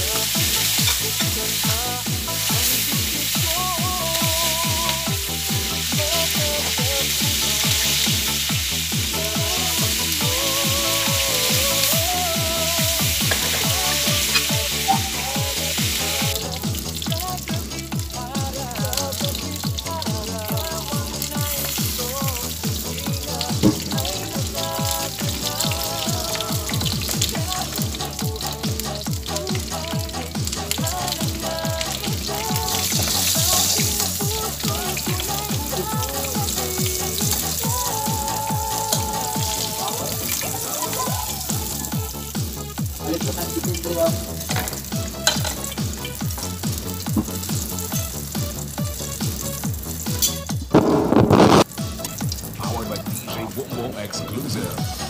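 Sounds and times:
music with steady beat: 0.0s - 55.0s
oil sizzling in frying pan: 0.0s - 55.0s.

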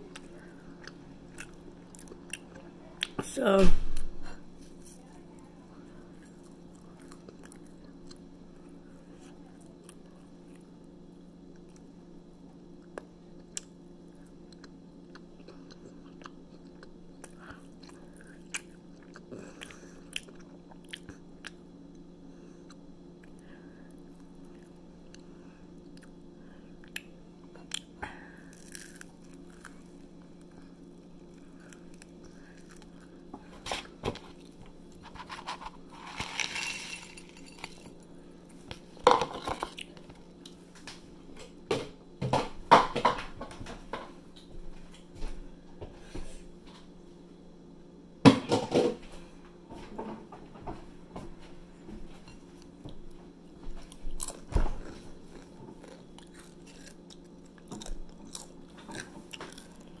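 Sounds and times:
steady low hum: 0.0s - 60.0s
person chewing crunchy snack: 0.1s - 2.6s, 12.8s - 21.6s, 24.2s - 38.6s, 53.8s - 60.0s.

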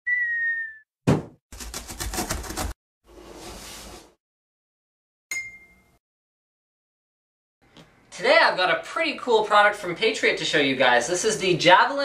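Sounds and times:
whistle sinking in pitch: 0.0s - 0.8s
box landing thunk: 1.1s - 1.4s
knife sawing through cardboard: 1.5s - 4.0s.

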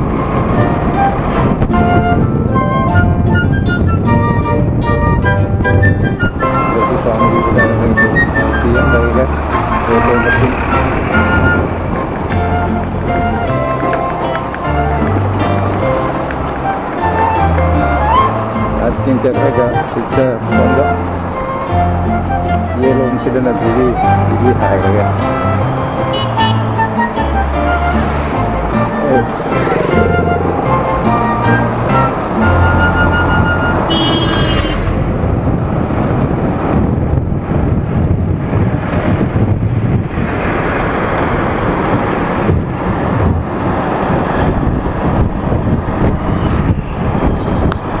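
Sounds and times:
wind buffeting microphone: 0.0s - 48.0s
wind rush and road noise: 0.0s - 48.0s.

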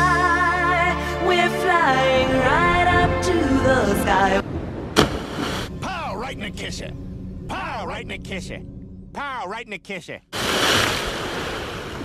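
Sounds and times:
sharp splash into water: 5.0s - 5.7s, 10.4s - 12.0s.

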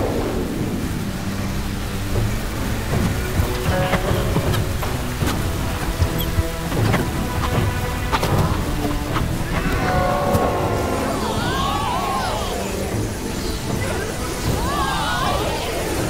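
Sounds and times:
dramatic score music: 0.0s - 16.0s.

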